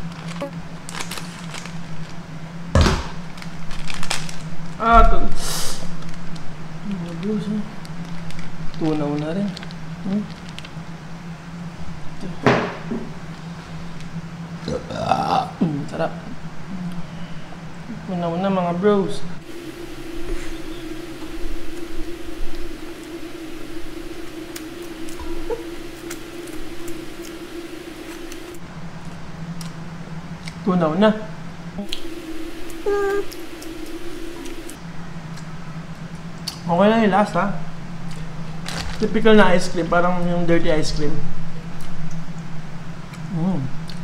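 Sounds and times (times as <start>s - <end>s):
steady low hum: 0.0s - 44.0s
hiss: 5.3s - 6.0s, 19.4s - 28.6s, 31.8s - 34.8s.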